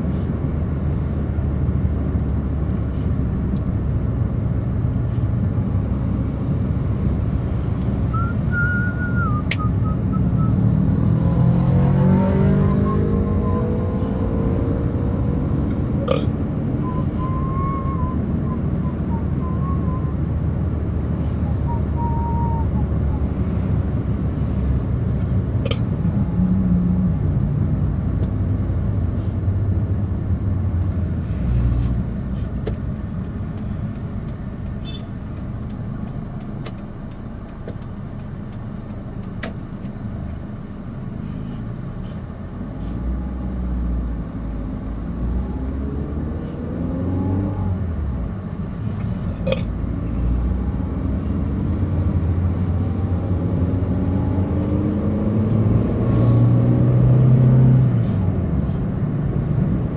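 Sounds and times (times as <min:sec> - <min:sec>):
car engine and tyre noise: 0:00.0 - 0:59.9.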